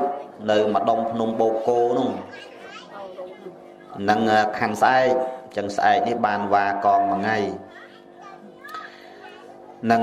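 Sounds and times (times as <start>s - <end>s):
faint voices: 0.0s - 10.0s
man preaching: 0.4s - 2.3s, 4.0s - 7.7s.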